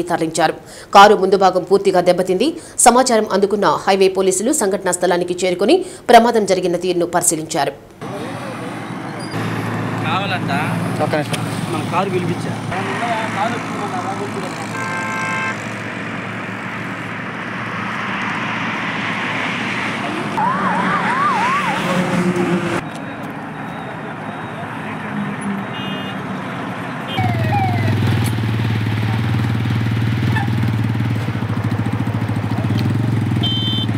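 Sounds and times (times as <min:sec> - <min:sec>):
highway traffic: 0:07.8 - 0:33.9
vehicle horn: 0:14.0 - 0:15.8, 0:25.4 - 0:26.3, 0:27.1 - 0:27.6, 0:33.3 - 0:33.9
emergency siren yelping: 0:20.1 - 0:26.2, 0:27.1 - 0:28.4.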